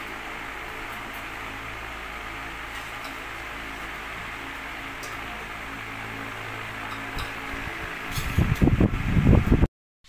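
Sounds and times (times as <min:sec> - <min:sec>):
low hum: 0:00.0 - 0:09.7.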